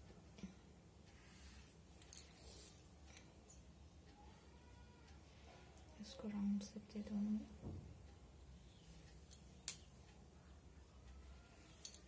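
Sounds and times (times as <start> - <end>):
woman speaking softly: 5.8 - 7.6.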